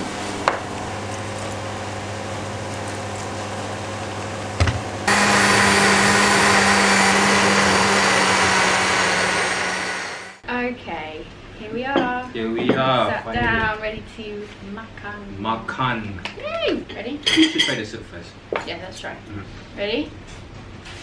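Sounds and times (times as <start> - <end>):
blender running: 0.9 - 10.4.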